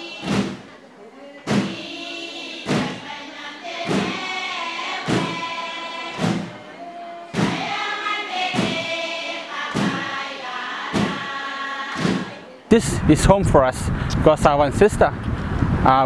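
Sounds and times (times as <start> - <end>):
choir singing over a beat: 0.0 - 12.5
thump: 1.5 - 1.8, 2.7 - 3.0, 3.9 - 4.2, 6.2 - 6.6, 7.3 - 7.8, 9.7 - 10.1, 11.0 - 11.2, 12.0 - 12.4.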